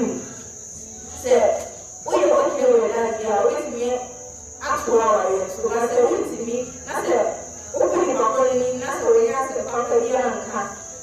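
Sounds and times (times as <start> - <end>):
woman speaking: 1.2 - 10.8.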